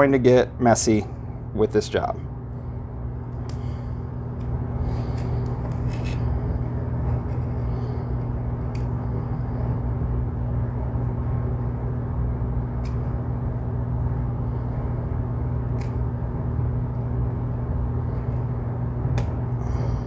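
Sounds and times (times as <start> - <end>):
low hum and rumble: 0.0 - 20.0.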